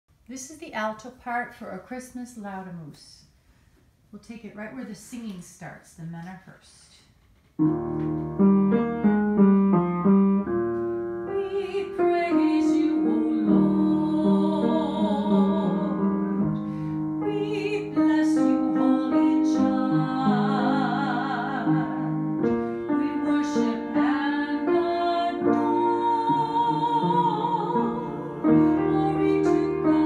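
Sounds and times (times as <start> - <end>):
piano playing single notes: 7.6 - 11.9
piano accompaniment: 7.6 - 30.0
soft singing voice: 11.4 - 16.1, 22.9 - 30.0.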